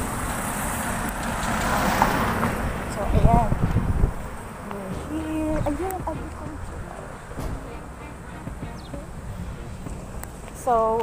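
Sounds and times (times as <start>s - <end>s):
street traffic rumble: 0.0s - 11.0s
wind on microphone: 2.6s - 11.0s.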